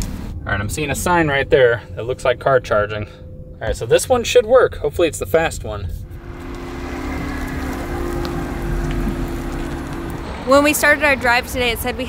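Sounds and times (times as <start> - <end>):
tyre and wind rumble: 0.0 - 12.0
electric van two-note hum: 5.2 - 12.0.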